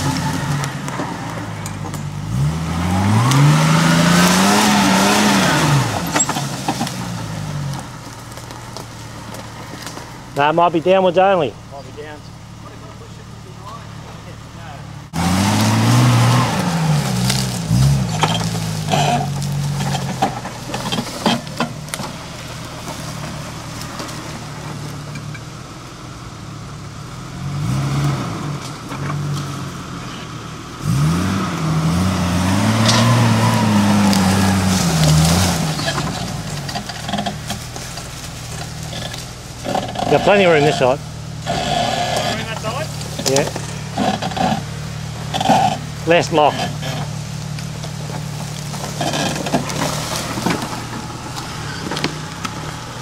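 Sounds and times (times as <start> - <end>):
engine revving: 0.0 - 53.0
sharp cracks and knocks: 32.8 - 40.1, 47.0 - 52.8.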